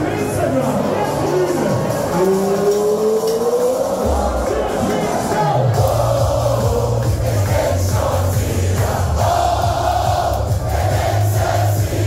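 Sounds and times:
crowd chanting: 0:00.0 - 0:12.0
party music with heavy bass beat: 0:00.0 - 0:12.0.

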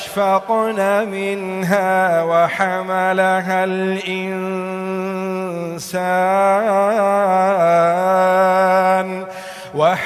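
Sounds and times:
man chanting melodically: 0:00.0 - 0:10.0
short breath: 0:09.2 - 0:09.8.

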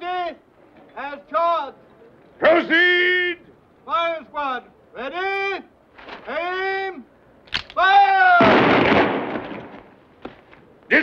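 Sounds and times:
man shouting: 0:07.8 - 0:08.6.

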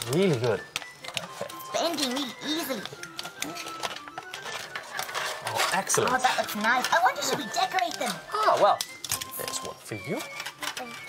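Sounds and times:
aluminium foil crinkling: 0:00.0 - 0:11.0
background music: 0:00.0 - 0:11.0.

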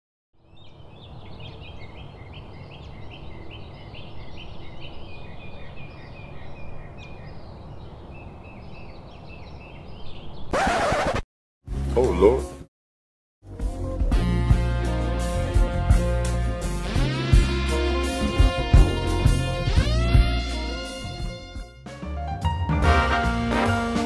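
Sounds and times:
small birds chirping: 0:00.4 - 0:11.2.

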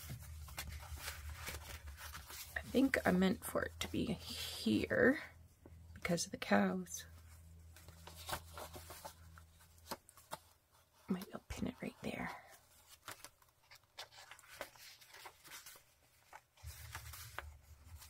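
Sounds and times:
paper pages rustling: 0:00.0 - 0:03.1, 0:07.5 - 0:18.0.

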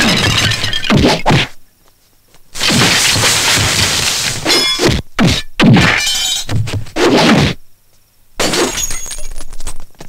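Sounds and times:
crash of something shattering: 0:02.6 - 0:05.0
clinks of falling pieces: 0:08.4 - 0:10.0.

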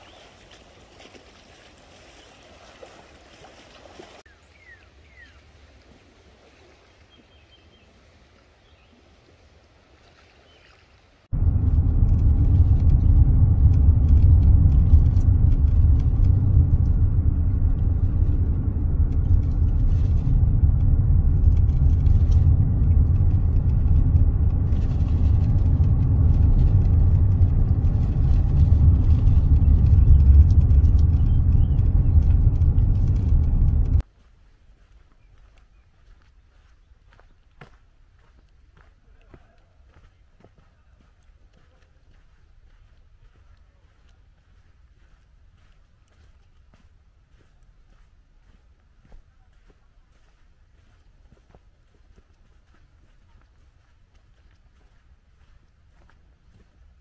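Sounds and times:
car interior road rumble: 0:11.3 - 0:34.0.

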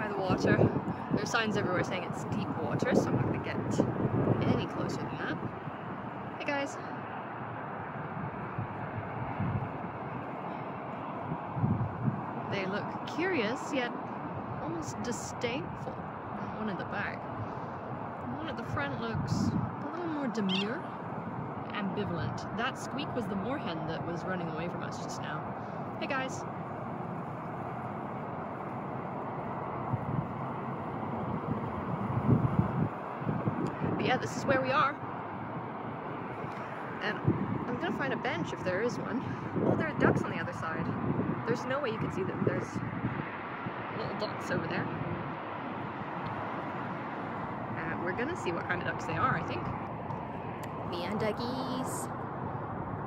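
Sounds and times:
steady outdoor hiss: 0:00.0 - 0:53.0
wind buffeting microphone: 0:00.0 - 0:53.0.

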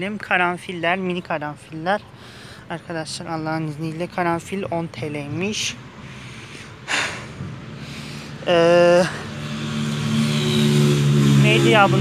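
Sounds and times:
vehicle engine running: 0:07.5 - 0:12.0.

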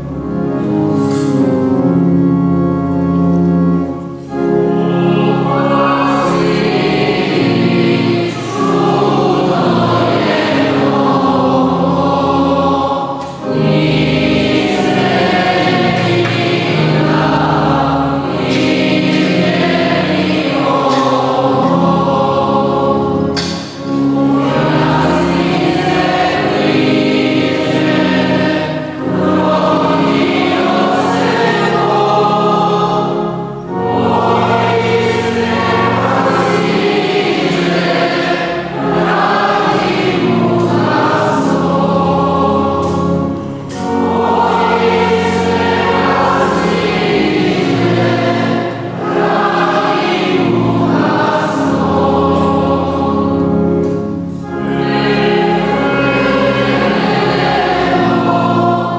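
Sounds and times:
church choir singing a hymn: 0:00.0 - 0:58.9.

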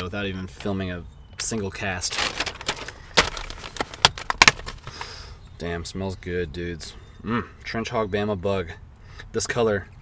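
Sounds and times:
plastic bag crinkling: 0:02.0 - 0:05.1.

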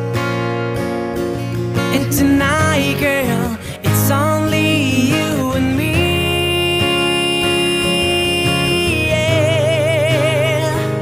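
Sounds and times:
strummed acoustic guitar: 0:00.0 - 0:11.0.

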